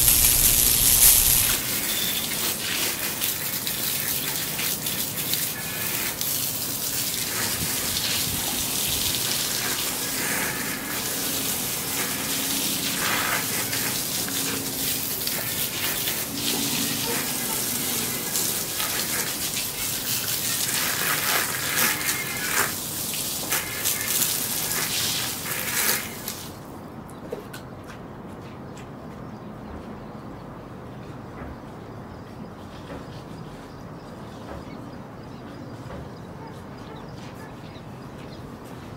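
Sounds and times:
hose spray splashing on bike: 0:00.0 - 0:26.7.

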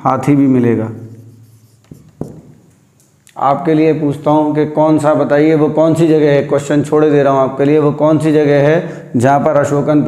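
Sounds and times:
marker rubbing on whiteboard: 0:00.8 - 0:03.2
marker sharp ticks: 0:01.1 - 0:03.4.

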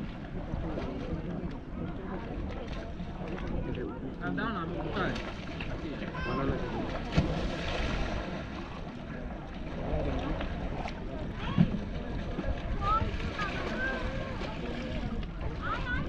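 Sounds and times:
wind rumbling on microphone: 0:04.8 - 0:16.0.

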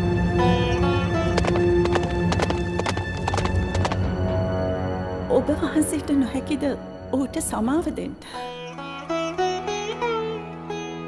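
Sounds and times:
trailer music held tones: 0:00.0 - 0:11.0
sharp clip-clop knocks: 0:00.7 - 0:04.2.

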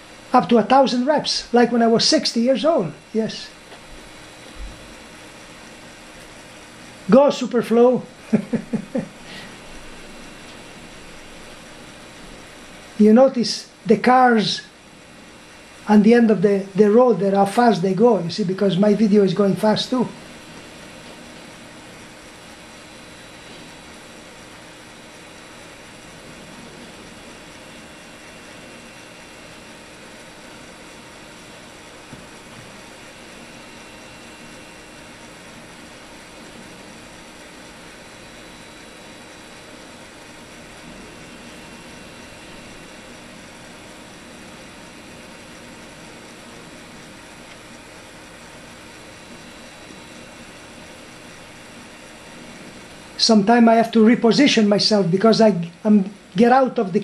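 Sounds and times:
faint hum tones: 0:00.0 - 0:57.0
recording hiss: 0:00.0 - 0:57.0.

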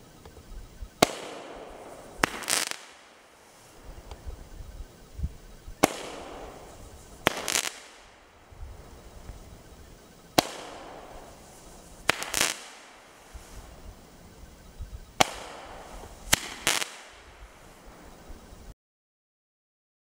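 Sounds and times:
firework crackling burst: 0:01.0 - 0:18.7.

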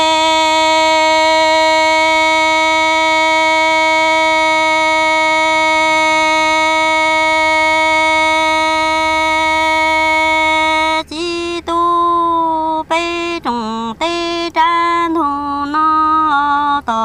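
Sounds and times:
woman singing long note: 0:00.0 - 0:17.0.

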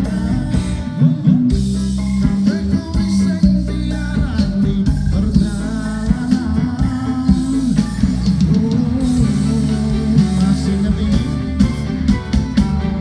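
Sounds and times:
drum kit: 0:00.0 - 0:13.0
guitars: 0:00.0 - 0:13.0
person singing: 0:00.0 - 0:13.0.

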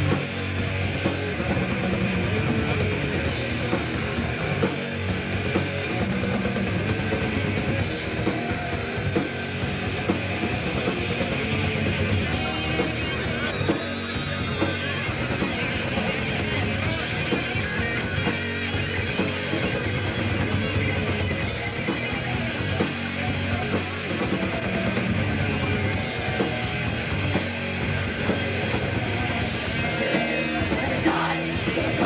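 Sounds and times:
distorted electric guitars: 0:00.0 - 0:32.0
drums: 0:00.0 - 0:32.0
heavy metal band playing live: 0:00.0 - 0:32.0.

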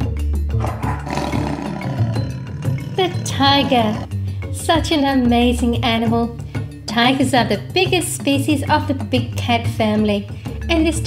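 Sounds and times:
background music: 0:00.0 - 0:11.0
big cat roaring: 0:00.6 - 0:04.2.

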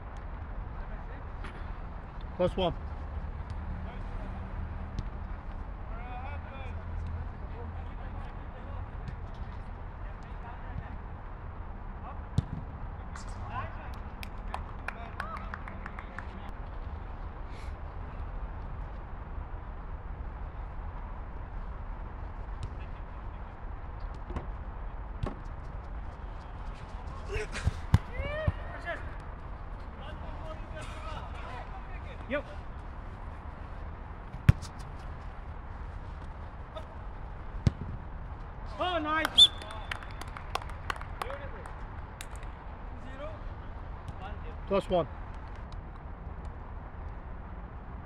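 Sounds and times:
football kick thuds: 0:12.3 - 0:12.7, 0:27.5 - 0:28.6, 0:34.3 - 0:34.9, 0:37.6 - 0:38.0.

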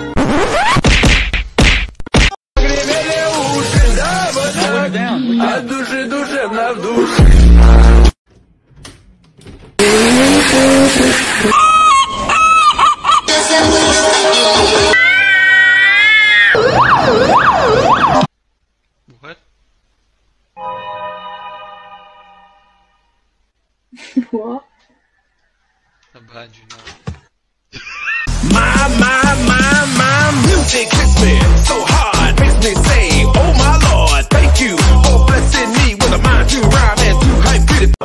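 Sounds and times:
loud slap sounds: 0:00.6 - 0:02.4
music: 0:02.6 - 0:05.2, 0:13.3 - 0:15.0, 0:28.3 - 0:38.0
fire engine siren wailing: 0:16.5 - 0:18.3.

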